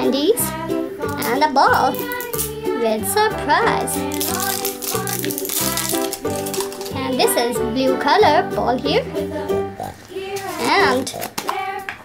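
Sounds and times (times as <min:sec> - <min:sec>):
background music: 0:00.0 - 0:12.0
plastic wrapper crinkling: 0:03.9 - 0:07.4, 0:10.0 - 0:11.5.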